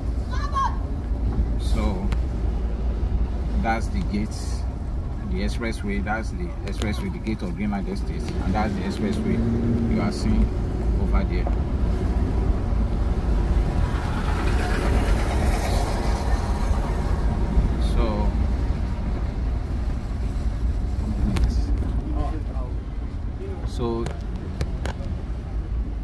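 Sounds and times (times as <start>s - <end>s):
car engine and road noise: 0.0s - 26.0s
voices: 3.5s - 11.6s.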